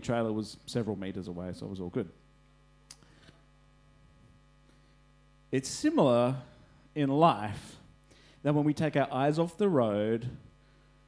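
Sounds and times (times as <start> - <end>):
faint mains hum: 0.0 - 11.0.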